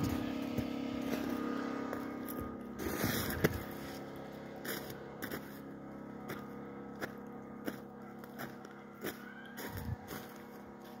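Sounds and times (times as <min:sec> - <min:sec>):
footsteps crunching on snow: 0:00.0 - 0:11.0
low mechanical hum: 0:00.0 - 0:11.0.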